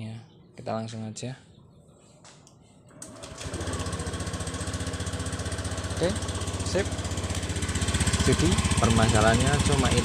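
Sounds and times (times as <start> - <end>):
scooter engine starting and idling: 2.9 - 10.0.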